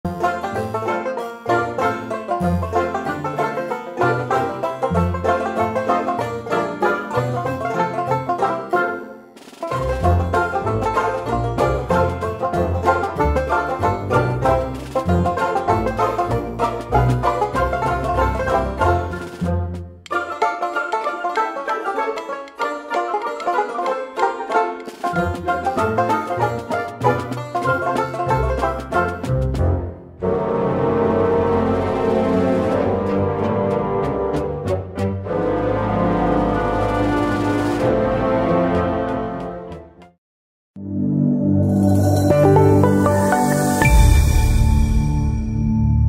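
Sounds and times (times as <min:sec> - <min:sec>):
instrumental music with bass line: 0:00.0 - 0:40.1, 0:41.3 - 0:46.0.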